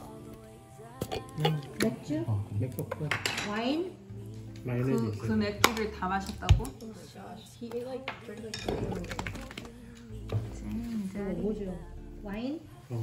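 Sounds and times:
tableware clinking and knocking: 0:02.9 - 0:03.7, 0:08.0 - 0:09.7.

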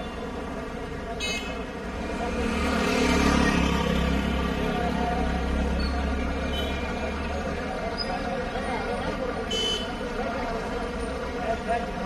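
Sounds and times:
steady traffic hum: 0:00.0 - 0:12.0
vehicle rumble: 0:00.0 - 0:12.0.

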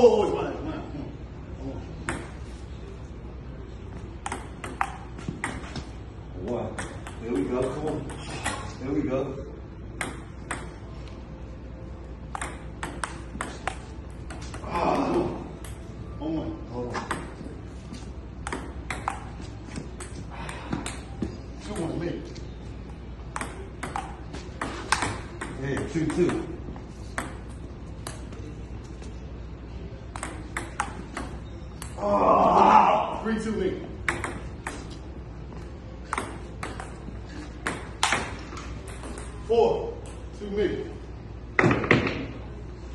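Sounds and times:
table tennis ball hits: 0:02.0 - 0:02.4, 0:04.2 - 0:08.8, 0:10.0 - 0:10.8, 0:12.3 - 0:15.8, 0:16.9 - 0:17.6, 0:18.4 - 0:22.0, 0:23.3 - 0:28.4, 0:30.1 - 0:32.0, 0:34.0 - 0:35.0, 0:36.0 - 0:39.4, 0:41.6 - 0:42.4.

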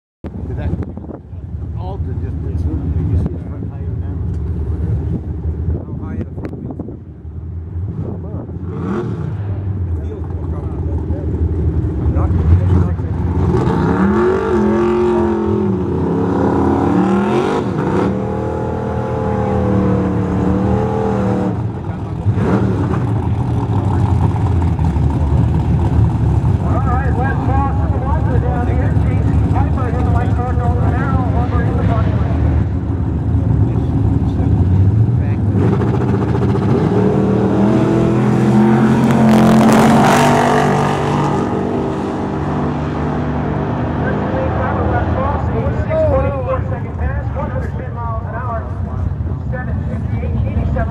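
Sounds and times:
race car engines idling and blipping: 0:00.2 - 0:50.9
race cars accelerating hard: 0:07.7 - 0:50.9.

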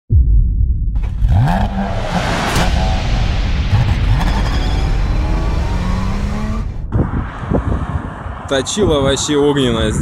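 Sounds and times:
car engine rumbling and revving: 0:01.0 - 0:10.0.

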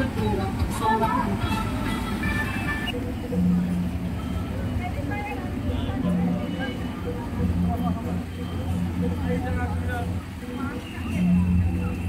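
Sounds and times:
faint music: 0:00.0 - 0:12.0
low rumble of vehicle engines: 0:00.0 - 0:12.0
people talking: 0:00.0 - 0:12.0
steady hum: 0:00.0 - 0:12.0.

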